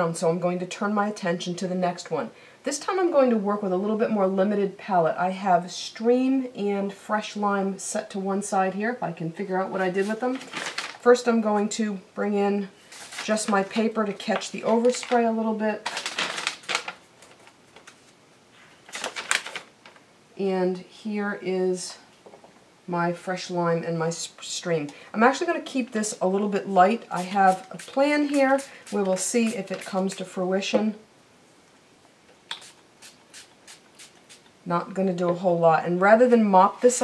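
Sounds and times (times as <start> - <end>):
paper rustling and crinkling: 10.0 - 11.1, 12.9 - 20.0
spray bottle hissing: 32.5 - 34.5.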